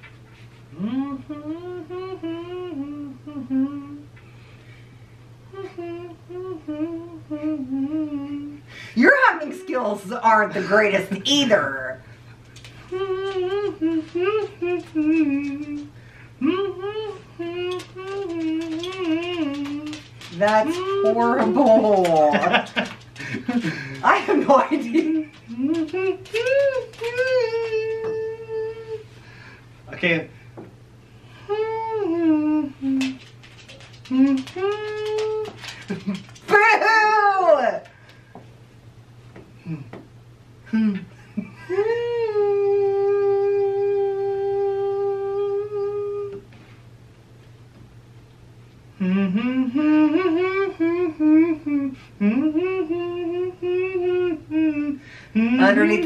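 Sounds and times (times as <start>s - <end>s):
man humming a melody: 0.7s - 4.2s, 5.5s - 8.7s, 12.8s - 21.5s, 25.0s - 29.1s, 31.2s - 36.2s, 39.6s - 40.0s, 40.6s - 46.6s, 48.9s - 56.0s.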